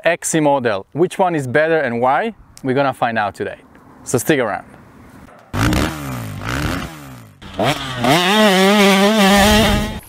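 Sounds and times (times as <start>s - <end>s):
motorcycle engine revving: 5.5s - 10.0s.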